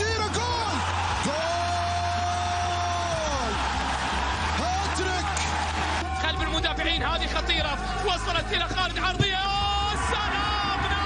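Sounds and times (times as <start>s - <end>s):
background music: 0.0s - 11.0s
stadium crowd noise: 0.0s - 11.0s
commentator shouting: 6.0s - 11.0s.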